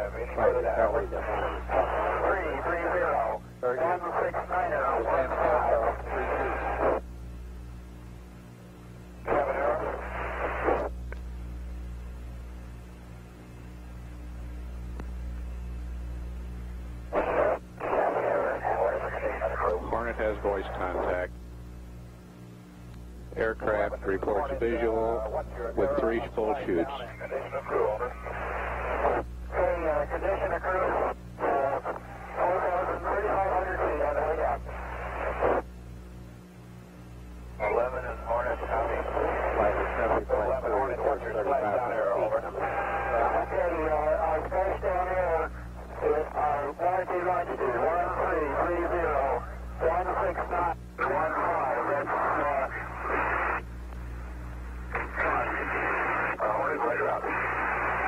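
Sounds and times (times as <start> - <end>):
hissy radio voice channel: 0.0 - 7.0, 9.2 - 11.0, 17.1 - 21.3, 23.3 - 35.7, 37.6 - 53.7, 54.8 - 58.0
steady low hum: 0.0 - 58.0.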